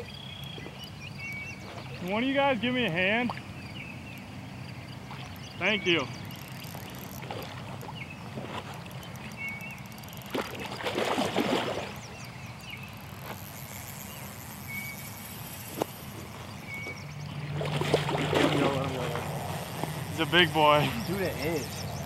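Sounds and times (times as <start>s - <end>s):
water splashing and sloshing: 5.0s - 12.3s, 15.7s - 21.4s.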